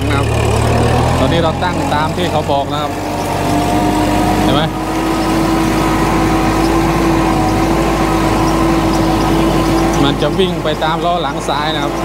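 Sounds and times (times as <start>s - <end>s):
tractor diesel engine under load: 0.0s - 12.0s.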